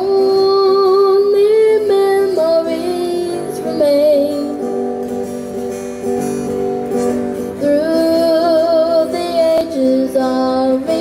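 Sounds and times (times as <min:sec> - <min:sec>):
boy singing: 0:00.0 - 0:04.6, 0:07.6 - 0:11.0
acoustic guitar strumming chords: 0:00.0 - 0:11.0.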